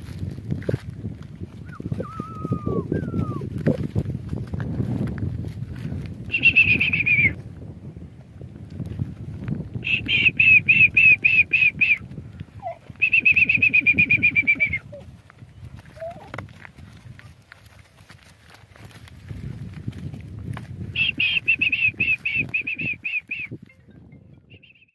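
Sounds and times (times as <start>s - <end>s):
breath rumble on microphone: 0.0s - 6.4s, 7.2s - 23.0s
person whistling high notes: 1.7s - 3.5s, 6.3s - 7.4s, 13.0s - 14.8s, 21.0s - 23.6s.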